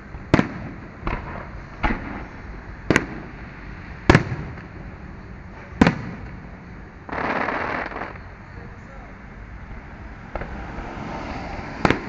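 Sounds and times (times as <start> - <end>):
fireworks bangs: 0.2 - 4.8, 5.5 - 6.5, 7.1 - 8.3, 10.3 - 10.6, 11.8 - 12.0.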